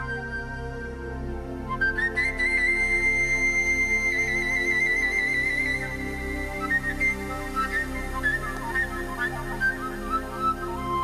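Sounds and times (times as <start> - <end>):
flute-like melody with vibrato: 0.0 - 11.0.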